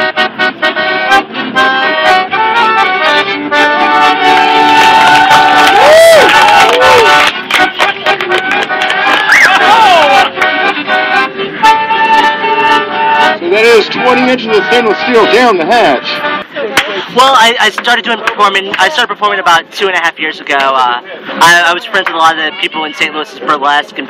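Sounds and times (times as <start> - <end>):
accordion: 0.0 - 5.8, 6.4 - 24.0
flute: 0.0 - 16.7
fiddles: 6.8 - 17.2.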